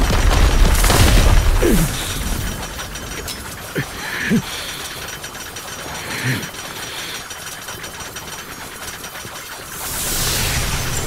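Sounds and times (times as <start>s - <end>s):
rapid energy crackling: 0.0s - 11.0s.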